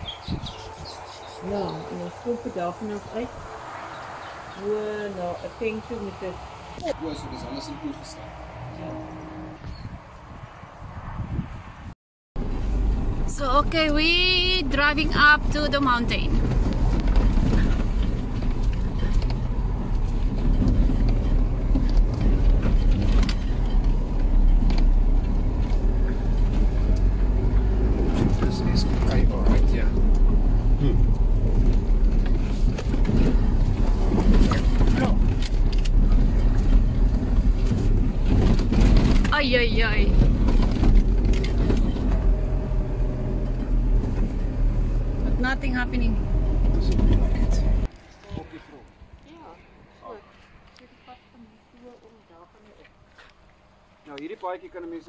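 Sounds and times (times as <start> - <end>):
car engine and tyre rumble: 0.0 - 55.0.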